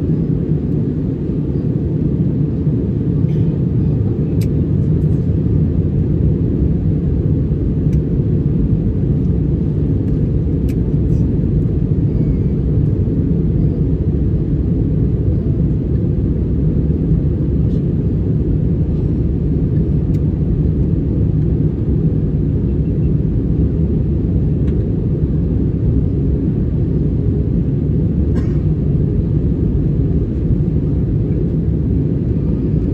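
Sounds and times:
jet airliner cabin rumble: 0:00.0 - 0:32.9.

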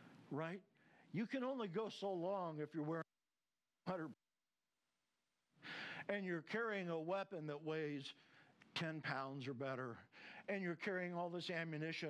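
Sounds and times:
man speaking: 0:00.2 - 0:03.1, 0:03.8 - 0:04.2, 0:06.0 - 0:12.0
man breathing in: 0:05.6 - 0:06.1, 0:10.1 - 0:10.5.

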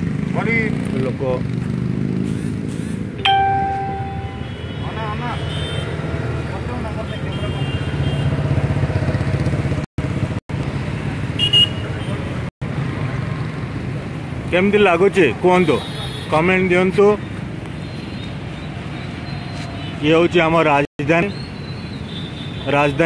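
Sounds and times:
traffic rumble: 0:00.0 - 0:23.0
vehicle horn: 0:03.7 - 0:06.0, 0:07.1 - 0:08.4, 0:11.4 - 0:12.2.

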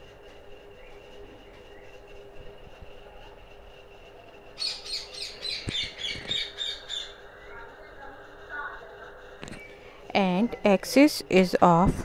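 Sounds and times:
faint steady hum: 0:00.0 - 0:12.0
bird chirping: 0:04.6 - 0:07.7.

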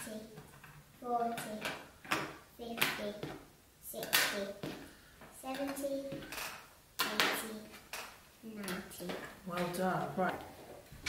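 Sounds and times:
plastic pieces clicking on table: 0:05.5 - 0:09.8.

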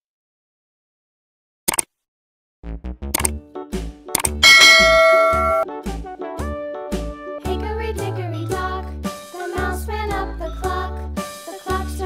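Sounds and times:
quick click: 0:01.7 - 0:01.9, 0:03.2 - 0:03.4, 0:04.1 - 0:04.4
children's music with regular beat: 0:03.7 - 0:12.0
bell chime: 0:04.4 - 0:05.6.

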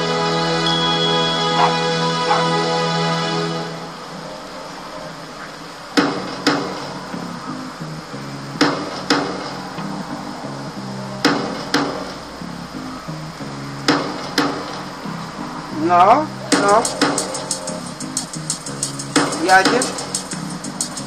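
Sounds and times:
sharp percussive hits: 0:06.0 - 0:07.1, 0:08.6 - 0:09.6, 0:11.2 - 0:12.2, 0:13.9 - 0:14.8, 0:16.5 - 0:21.0
music with low note pattern: 0:06.0 - 0:21.0.

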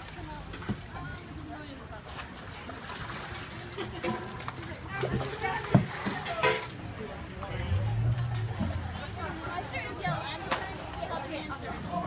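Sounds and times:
chatter of many people: 0:00.0 - 0:12.0
buckets scooping and knocking: 0:02.7 - 0:10.3.

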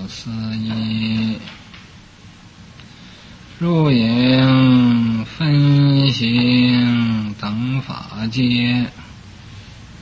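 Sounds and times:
man chanting slowly: 0:00.0 - 0:01.6, 0:03.6 - 0:09.1.

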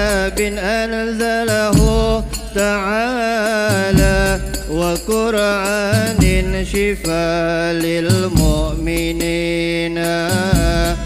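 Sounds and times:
frame drums: 0:00.0 - 0:11.0
person singing ornamented notes: 0:00.0 - 0:11.0
low steady bass: 0:01.5 - 0:03.1, 0:03.8 - 0:07.0, 0:10.4 - 0:11.0.

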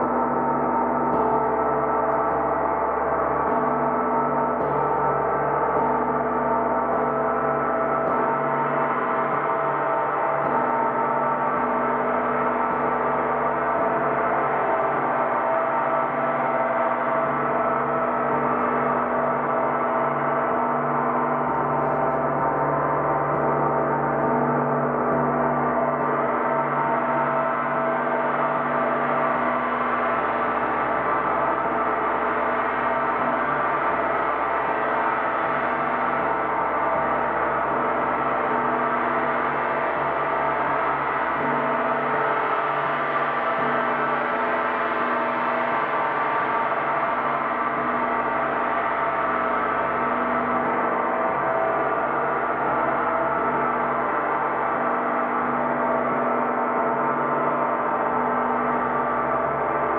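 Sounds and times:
gong roll drone: 0:00.0 - 0:59.9.

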